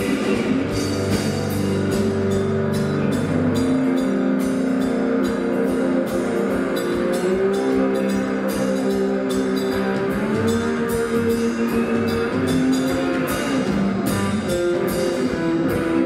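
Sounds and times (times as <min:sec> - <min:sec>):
bass line: 0:00.0 - 0:16.0
drum kit with cymbal strokes: 0:00.0 - 0:16.0
electric guitar: 0:00.0 - 0:16.0.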